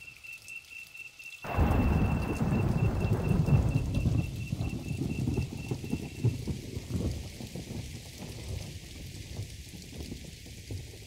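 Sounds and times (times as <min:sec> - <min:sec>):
rain: 0:00.0 - 0:11.0
soft high beep: 0:01.5 - 0:06.0
thunder rumble: 0:01.5 - 0:11.0.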